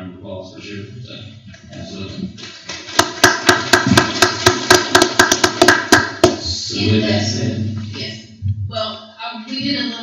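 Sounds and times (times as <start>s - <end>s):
background voices: 6.4s - 8.9s.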